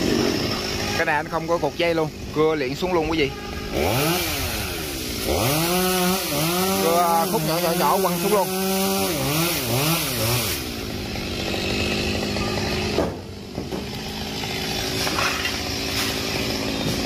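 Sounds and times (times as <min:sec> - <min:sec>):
chainsaw cutting wood: 0:00.0 - 0:17.0.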